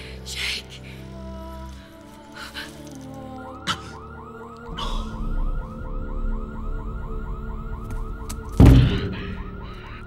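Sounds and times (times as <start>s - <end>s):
rapid electronic warning alarm: 3.5s - 10.0s
loud thud: 8.6s - 9.4s.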